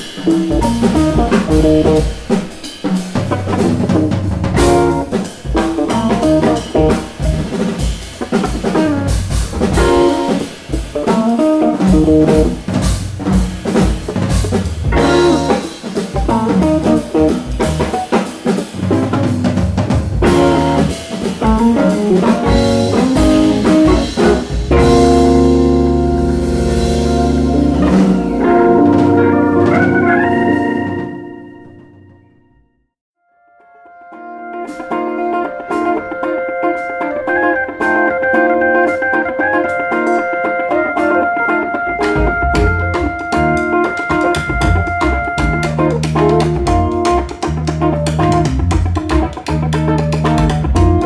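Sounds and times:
organ: 0.0s - 13.0s, 13.7s - 32.4s, 33.9s - 47.1s
drum kit beat: 0.0s - 32.1s, 34.6s - 51.0s
electric guitar: 0.0s - 32.4s, 33.5s - 51.0s.

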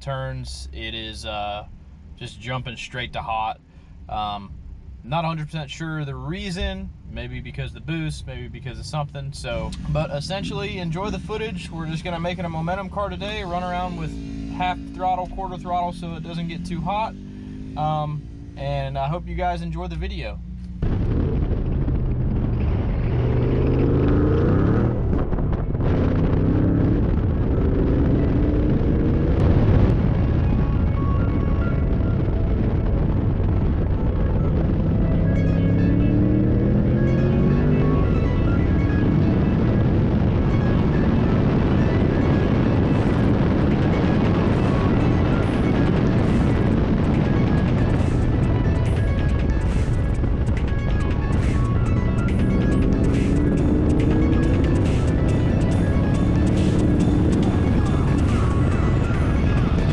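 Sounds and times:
car engine revving through gears: 8.9s - 18.6s, 20.4s - 31.1s, 33.2s - 59.9s
background music: 30.1s - 59.9s.

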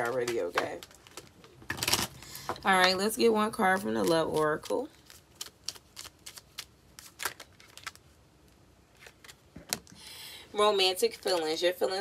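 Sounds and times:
cards shuffling: 0.0s - 2.2s, 3.9s - 8.1s, 8.9s - 9.8s.

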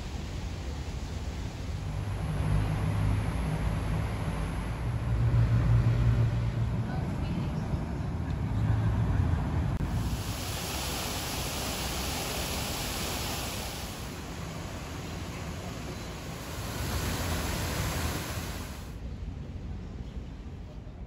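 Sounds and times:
high hiss: 9.8s - 19.0s.

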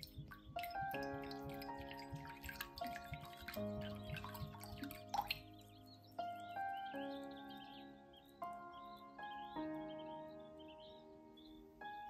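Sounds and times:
liquid trickling into bowl: 0.0s - 5.7s
soft background music: 0.0s - 12.0s.

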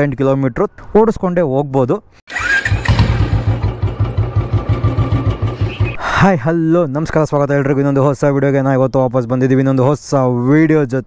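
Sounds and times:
motorcycle engine idling: 2.3s - 6.0s.

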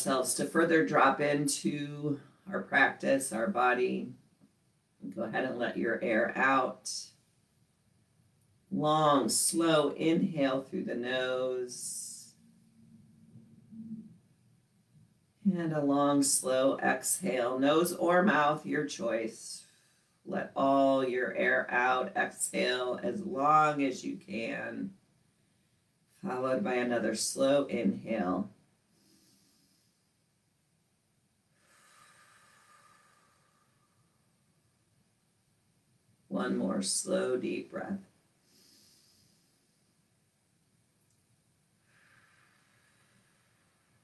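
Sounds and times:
faint low hum: 0.0s - 44.0s
faint deep breath: 28.9s - 30.2s, 31.5s - 34.6s, 38.4s - 40.1s, 41.8s - 44.0s.

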